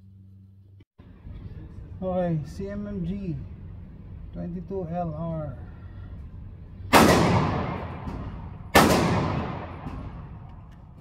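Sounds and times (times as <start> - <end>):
gunshots echoing indoors: 6.9 - 11.0.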